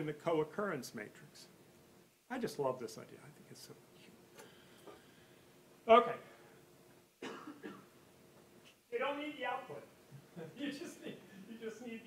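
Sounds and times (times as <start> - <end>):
person coughing: 7.2 - 7.9.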